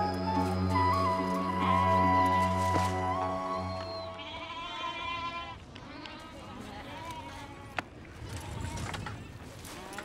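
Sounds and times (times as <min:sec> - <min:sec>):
livestock bleating: 0:04.0 - 0:07.8.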